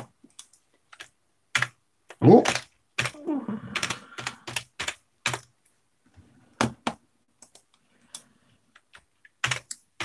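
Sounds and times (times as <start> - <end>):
keyboard typing: 0.0 - 5.7, 6.6 - 10.0
murmured voice: 3.2 - 3.8.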